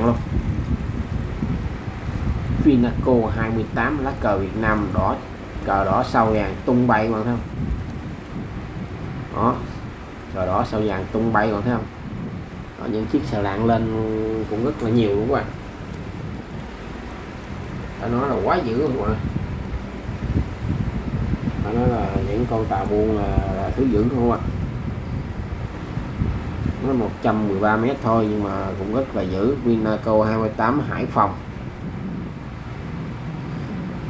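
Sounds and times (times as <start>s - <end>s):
faint hum: 0.0s - 34.0s
ship engines rumbling: 0.0s - 34.0s
wind buffeting microphone: 0.0s - 34.0s.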